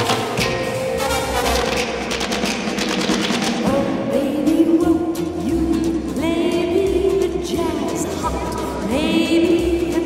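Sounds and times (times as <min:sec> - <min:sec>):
fast percussive strikes: 0:00.0 - 0:10.0.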